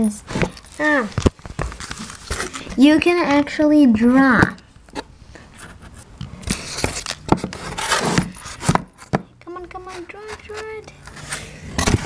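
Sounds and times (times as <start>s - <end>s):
foil rustling: 0.7s - 2.8s.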